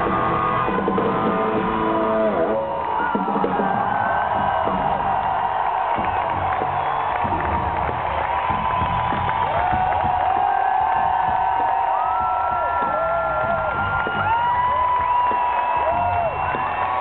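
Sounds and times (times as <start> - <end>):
crowd cheering: 0.0 - 17.0.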